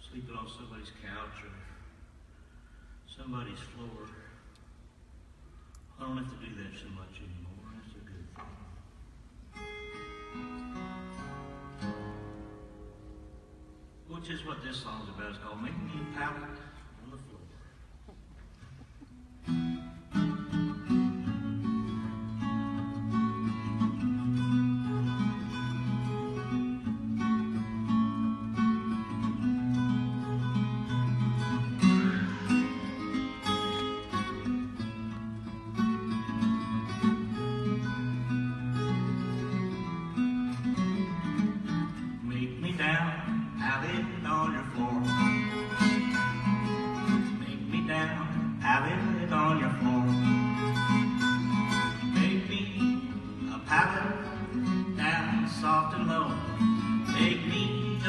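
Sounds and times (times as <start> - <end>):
acoustic guitar blues picking: 9.5 - 14.0, 18.8 - 58.0.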